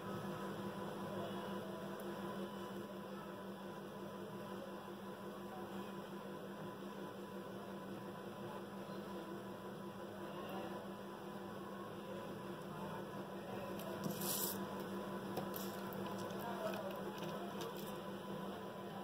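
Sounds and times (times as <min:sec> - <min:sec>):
faint electrical hum: 0:00.0 - 0:19.0
constant hiss: 0:13.8 - 0:18.0.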